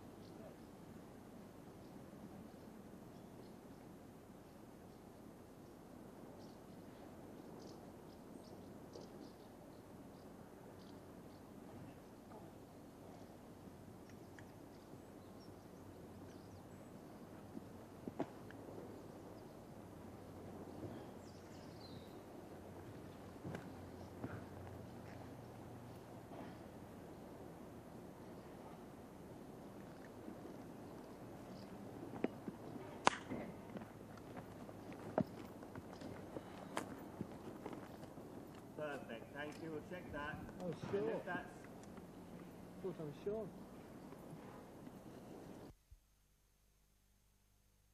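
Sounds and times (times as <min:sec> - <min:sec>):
faint steady hiss: 0:00.0 - 0:47.9
low background noise: 0:00.0 - 0:47.9
horse hooves stepping: 0:17.2 - 0:19.0, 0:22.4 - 0:27.5, 0:28.6 - 0:42.6.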